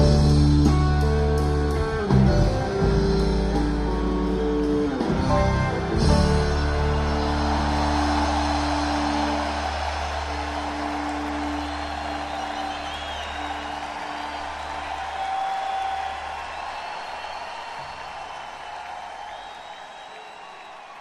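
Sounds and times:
rock band held chord: 0.0s - 17.3s
crowd cheering and whistling: 3.5s - 21.0s.

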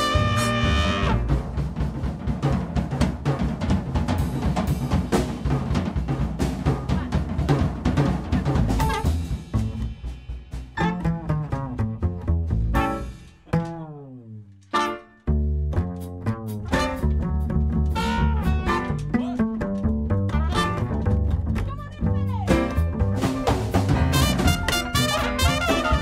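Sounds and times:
plucked double bass: 0.0s - 1.6s, 8.1s - 14.5s, 15.2s - 26.0s.

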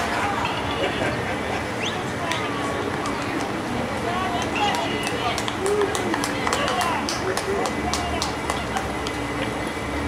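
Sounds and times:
people calling out and chattering: 0.0s - 10.0s.

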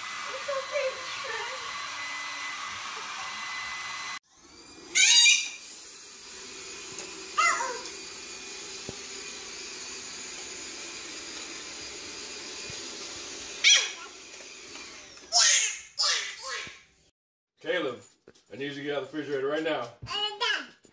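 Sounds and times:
robot vacuum cleaner running: 0.0s - 15.5s
steady appliance noise: 0.0s - 16.6s
high falling cries: 4.8s - 5.7s, 7.3s - 8.0s.

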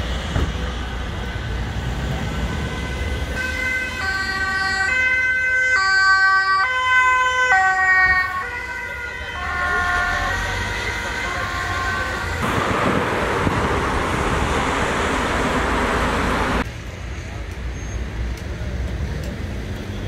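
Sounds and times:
low traffic rumble: 0.0s - 20.0s
ambulance two-tone siren: 2.4s - 12.4s.

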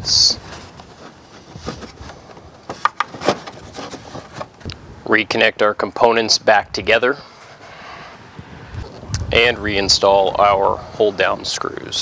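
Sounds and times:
plastic rubbing and knocking: 0.4s - 4.7s.

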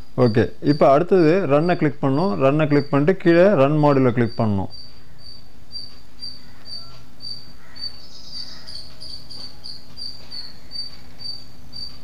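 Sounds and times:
cricket chirping: 0.0s - 12.0s
faint electrical hum: 0.0s - 12.0s.

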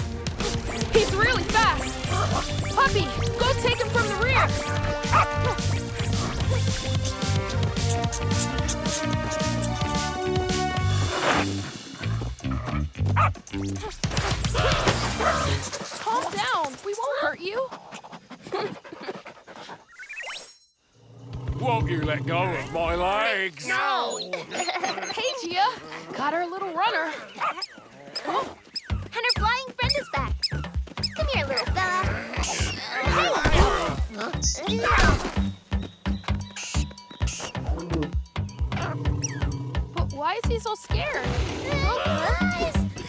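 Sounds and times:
cartoon chase music with bass beat: 0.0s - 15.7s, 28.9s - 43.0s
cartoon animal sniffing and panting: 2.0s - 10.2s, 17.2s - 20.3s
rising electronic zip: 19.9s - 20.8s
wavering voice-like calls: 27.2s - 35.2s, 36.4s - 40.2s
cartoon character squeaky chirping: 27.5s - 33.4s.

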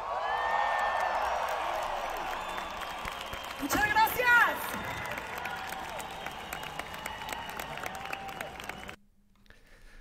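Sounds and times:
concert crowd cheering and screaming: 0.0s - 9.0s.

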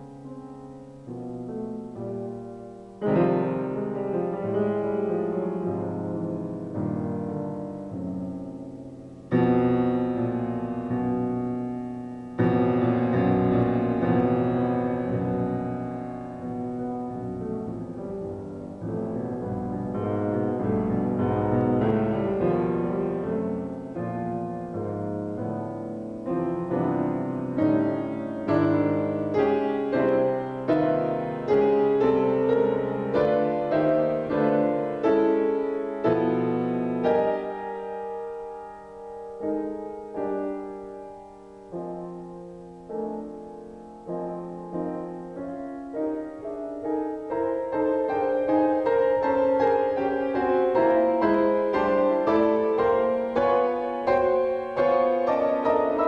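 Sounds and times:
grand piano playing: 0.0s - 56.0s.

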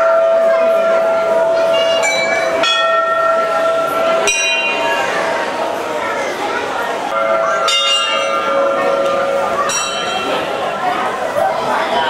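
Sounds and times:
temple bells ringing: 0.0s - 12.0s.

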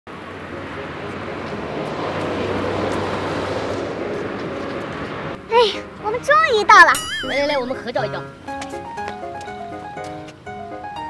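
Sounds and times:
traffic rumble and hiss: 0.1s - 11.0s.

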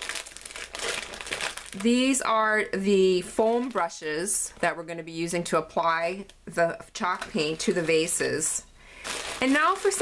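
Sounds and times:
plastic bags crinkling: 0.0s - 2.3s, 7.2s - 10.0s.

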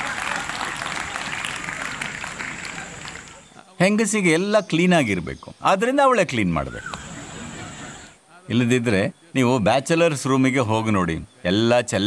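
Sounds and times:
man speaking: 8.2s - 12.0s.

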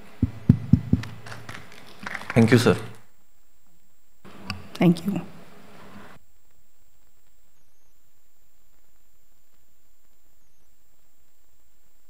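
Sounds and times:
dull low thumps: 0.0s - 1.2s.

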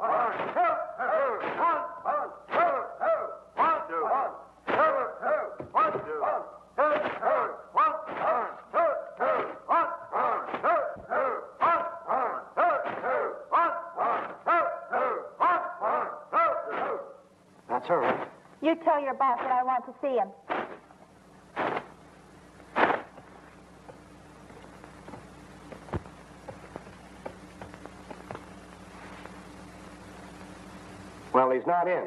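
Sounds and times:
students shouting together: 0.0s - 17.2s.

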